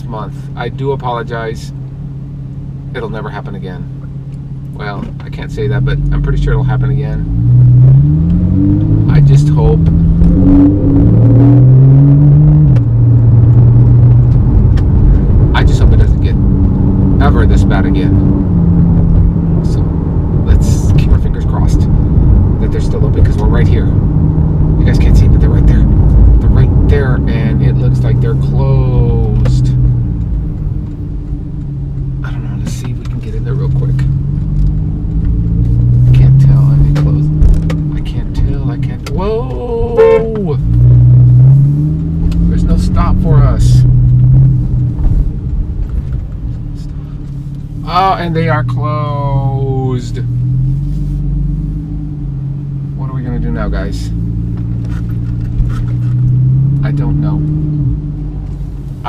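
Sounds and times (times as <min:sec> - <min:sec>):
car engine accelerating: 0:00.0 - 0:59.0
road rumble: 0:00.0 - 0:59.0.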